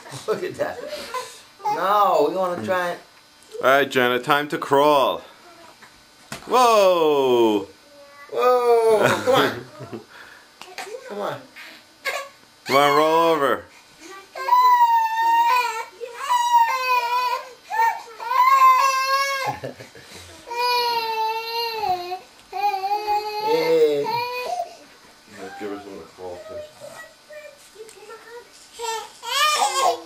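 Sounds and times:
baby crying: 14.4s - 19.6s, 20.5s - 24.8s, 28.8s - 30.0s.

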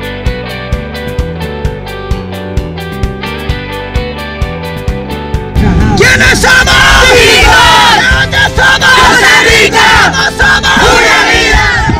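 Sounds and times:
music with a beat: 0.0s - 6.0s
group yelling together: 5.6s - 11.9s.

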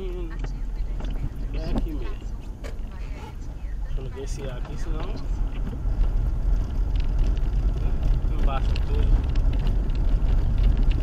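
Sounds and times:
car engine and tyres rumble: 0.0s - 11.0s.

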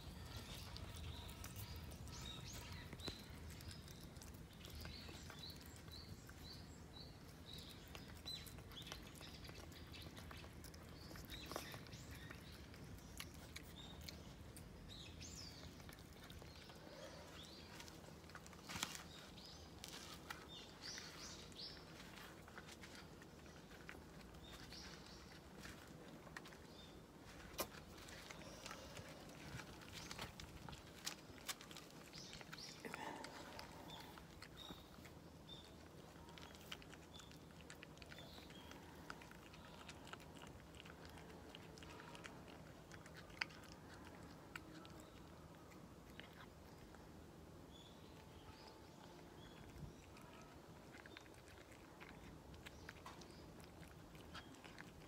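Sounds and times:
cat eating from paper bowl: 0.0s - 55.0s
small birds chirping: 0.0s - 55.0s.

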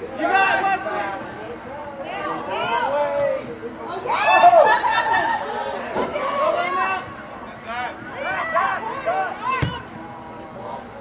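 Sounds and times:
ball kick thump: 9.6s - 9.9s.

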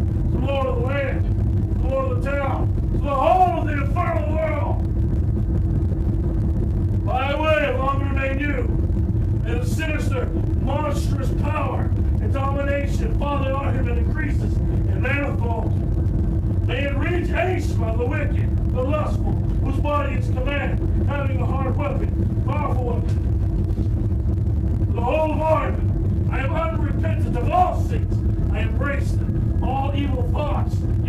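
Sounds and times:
steady low rumble: 0.0s - 31.0s.

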